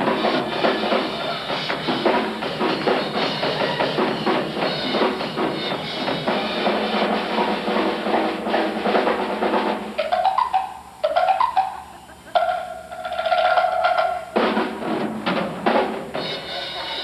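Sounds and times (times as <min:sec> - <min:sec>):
solo wind instrument: 0:00.0 - 0:07.5, 0:16.2 - 0:17.0
concert band playing: 0:00.0 - 0:17.0
drum kit: 0:00.0 - 0:17.0.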